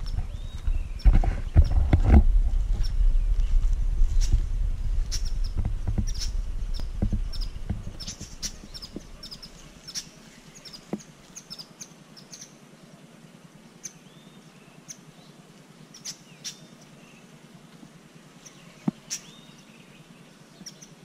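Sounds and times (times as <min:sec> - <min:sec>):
low rumble on microphone: 0:00.0 - 0:10.6
birds chirping: 0:00.0 - 0:13.0, 0:13.6 - 0:21.0.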